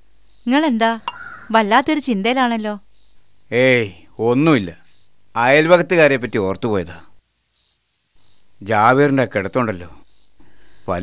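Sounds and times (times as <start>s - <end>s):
cricket chirping: 0.0s - 11.0s
man speaking: 3.5s - 4.8s, 5.4s - 7.1s, 8.6s - 10.0s.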